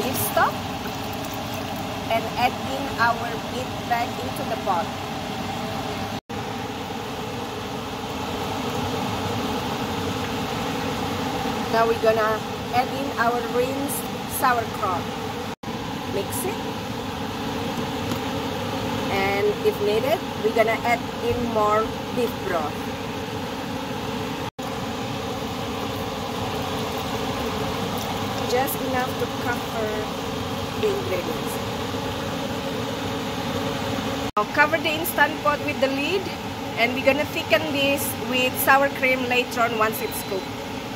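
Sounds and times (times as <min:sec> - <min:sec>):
mechanical hum: 0:00.0 - 0:40.9.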